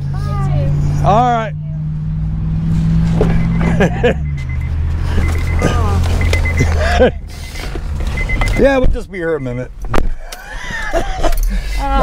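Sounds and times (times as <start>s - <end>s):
car engine idling: 0.0s - 12.0s
person laughing: 3.6s - 4.2s, 5.6s - 7.4s, 10.2s - 12.0s.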